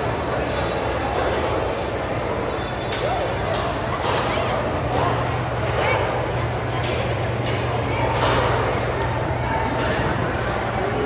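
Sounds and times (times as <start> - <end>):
loud din of indoor hall: 0.0 - 11.0.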